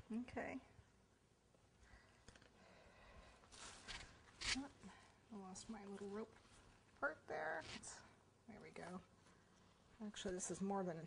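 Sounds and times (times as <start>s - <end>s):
woman speaking: 4.6s - 6.3s, 7.0s - 9.1s, 10.0s - 11.0s.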